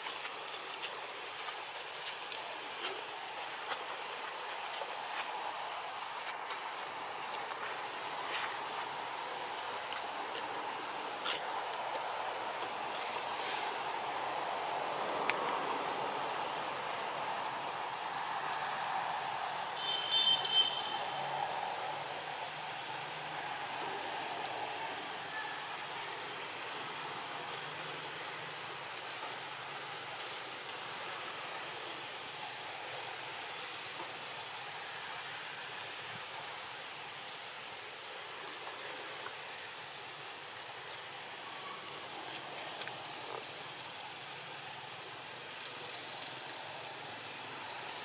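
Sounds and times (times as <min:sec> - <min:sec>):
hiss-like outdoor rumble: 0:00.0 - 0:48.0.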